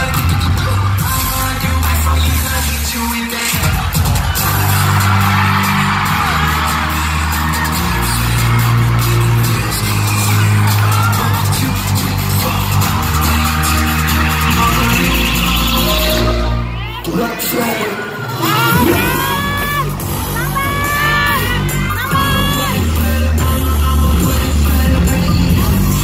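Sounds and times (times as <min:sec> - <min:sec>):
crowd screaming: 0:00.0 - 0:24.6
loud live pop music: 0:00.0 - 0:26.0
deep bass notes: 0:03.6 - 0:17.2, 0:18.8 - 0:26.0.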